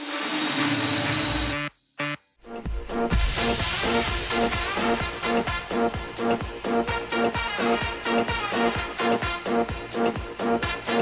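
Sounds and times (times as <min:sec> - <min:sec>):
rushing hissing noise sweep: 0:00.0 - 0:06.8.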